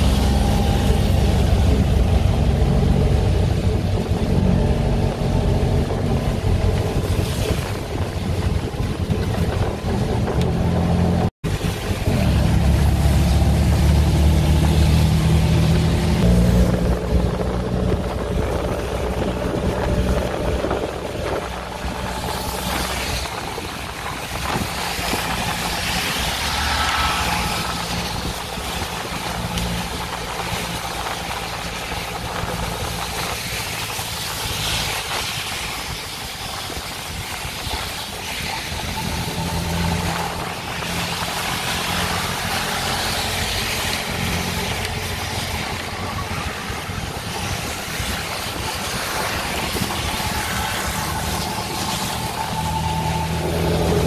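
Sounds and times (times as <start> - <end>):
auto rickshaw engine running: 0.0 - 54.0
road noise: 0.0 - 54.0.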